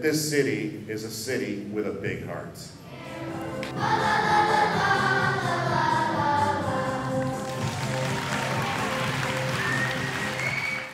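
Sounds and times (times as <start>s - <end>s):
choir singing held notes: 2.8s - 10.4s.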